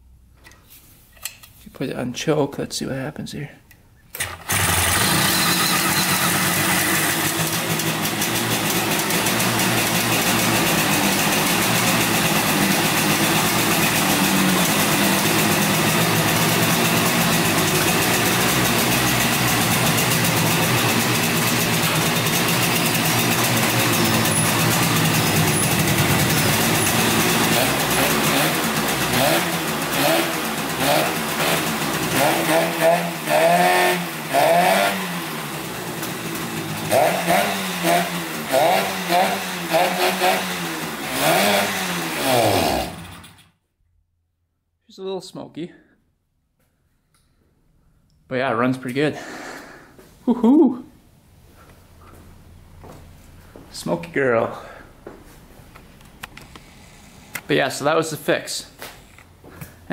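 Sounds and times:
two-stroke engine running and revving: 4.2s - 43.5s.

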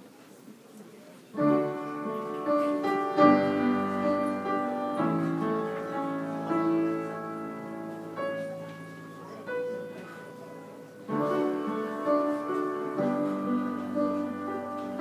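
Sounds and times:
piano chords: 1.4s - 15.0s.

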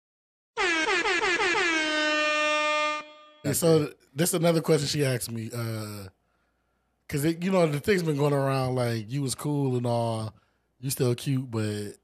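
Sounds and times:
air horn blasts: 0.6s - 3.5s.

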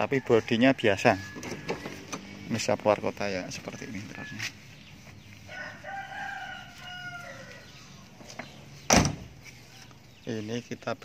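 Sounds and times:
rooster crowing: 0.0s - 2.1s, 5.4s - 8.1s
car door shutting: 8.2s - 9.3s.

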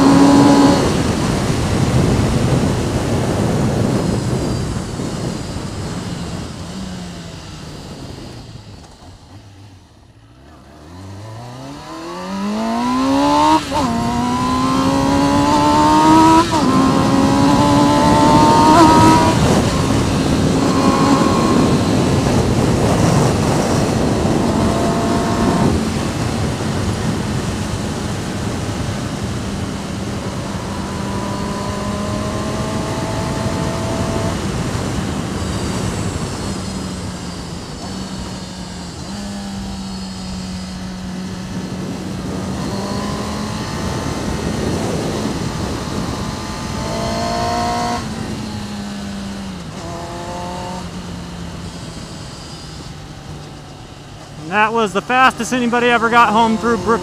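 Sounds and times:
motorcycle engine revving: 0.0s - 57.0s
road noise: 0.0s - 57.0s
rushing wind: 0.0s - 57.0s.

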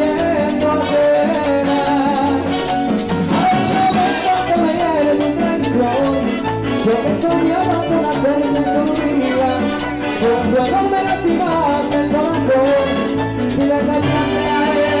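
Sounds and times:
latin dance band playing: 0.0s - 15.0s.

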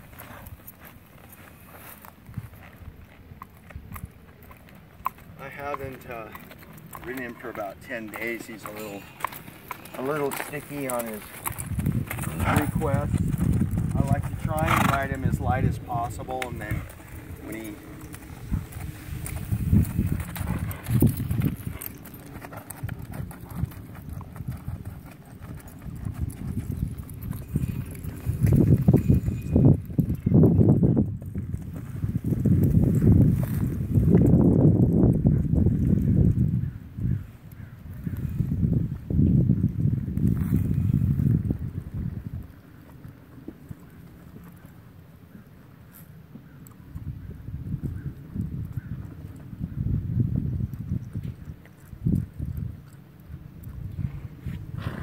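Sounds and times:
horse hoofbeats on dirt: 0.0s - 55.0s.

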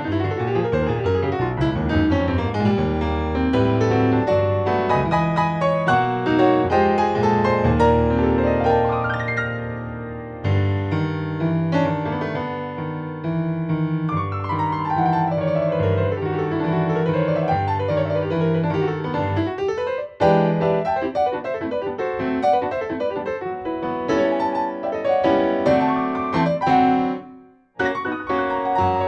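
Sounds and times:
piano playing: 0.0s - 29.0s.

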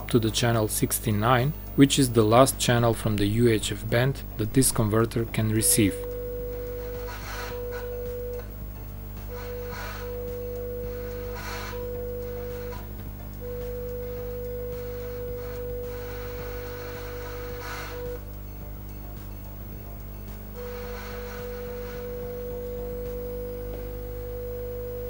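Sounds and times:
low mains hum: 0.0s - 25.0s
steady test tone: 0.0s - 25.0s.

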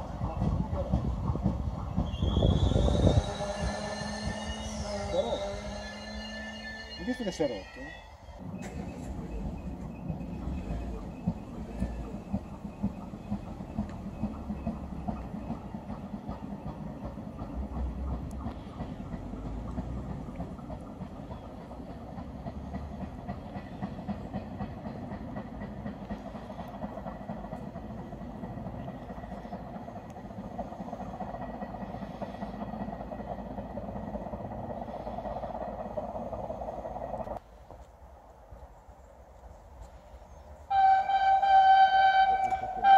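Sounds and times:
train wheels rumbling on rails: 0.0s - 42.9s.

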